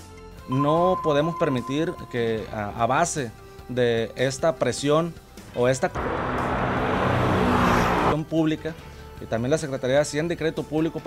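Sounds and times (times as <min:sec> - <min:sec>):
car road and wind noise: 0:05.6 - 0:08.2.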